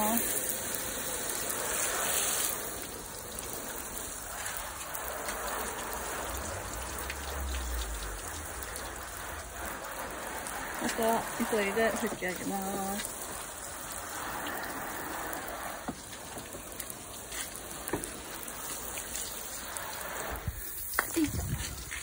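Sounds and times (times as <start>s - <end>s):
hose spray on car: 0.0s - 22.0s.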